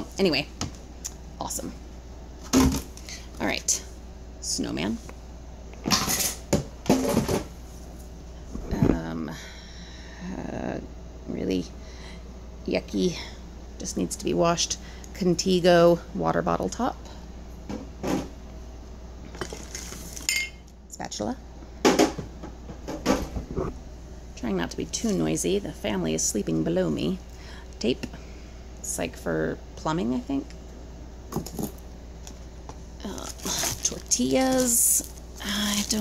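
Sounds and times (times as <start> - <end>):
items knocking and clinking: 5.8 - 7.5
plastic packaging crinkling: 19.4 - 20.3, 33.0 - 36.0
rummaging through groceries in box: 19.4 - 20.3, 33.0 - 36.0.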